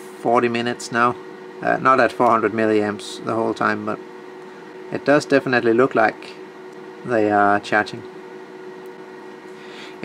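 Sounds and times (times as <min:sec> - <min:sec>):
equipment hum: 0:00.0 - 0:10.0.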